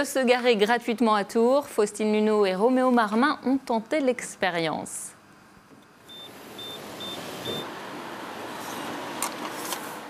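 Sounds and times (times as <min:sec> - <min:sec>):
street traffic noise: 0:06.0 - 0:10.0
parking meter beeps: 0:06.1 - 0:07.7.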